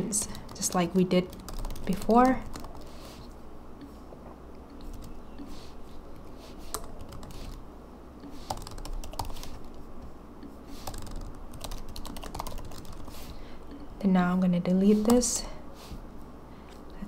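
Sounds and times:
typing on computer keyboard: 0.2 - 2.9, 6.7 - 7.6, 8.4 - 9.8, 10.8 - 13.1.

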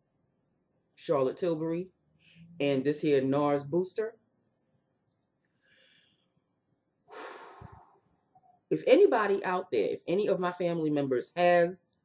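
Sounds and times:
woman exhaling through lips: 7.1 - 8.0.

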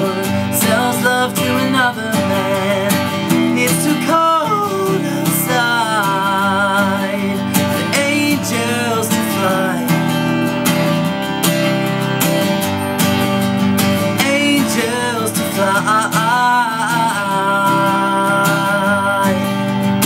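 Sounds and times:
man singing: 0.0 - 11.2, 13.8 - 20.0
strummed acoustic guitar: 0.0 - 20.0.

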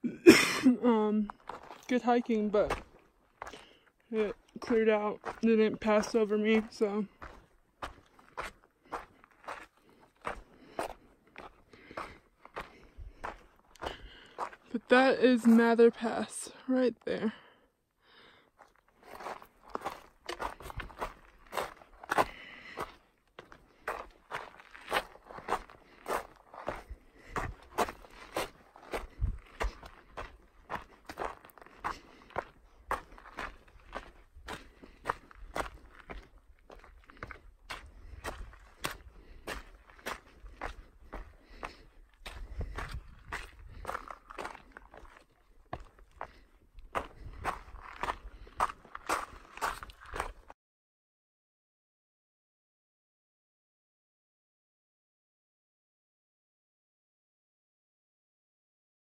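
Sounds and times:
footsteps on gravelly trail: 1.1 - 50.6.

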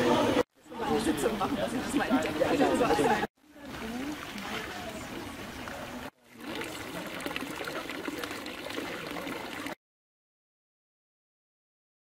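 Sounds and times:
rushing water: 0.0 - 9.8.

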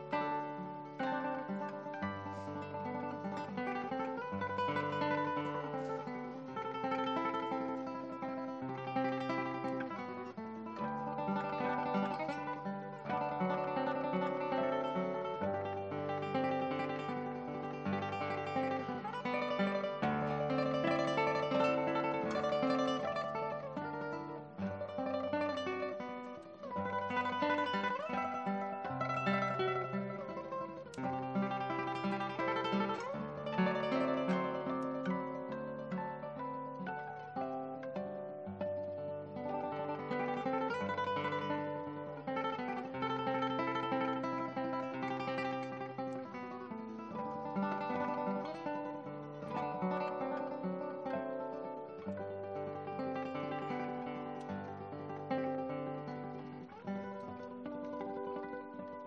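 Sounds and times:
guitar orchestra playing: 0.0 - 59.0.

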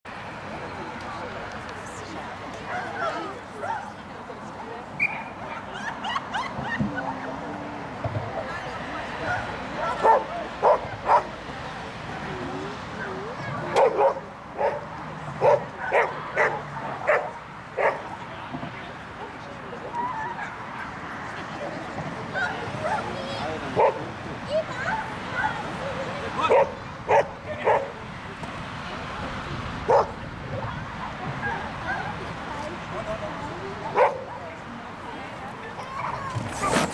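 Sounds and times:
murmur of spectator chatter: 0.1 - 36.9
people talking: 0.2 - 36.9
dog barking: 10.0 - 11.3, 13.8 - 18.0, 26.4 - 27.9, 29.9 - 30.1, 34.0 - 34.3.

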